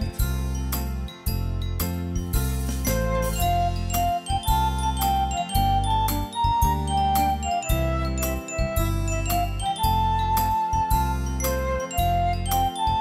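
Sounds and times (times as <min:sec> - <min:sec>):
bass and beat: 0:00.0 - 0:13.0
keyboard melody: 0:00.0 - 0:13.0.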